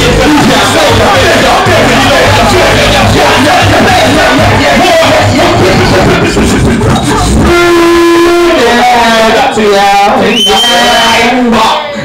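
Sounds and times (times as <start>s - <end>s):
club music: 0.0s - 12.0s
person singing through microphone: 0.0s - 12.0s.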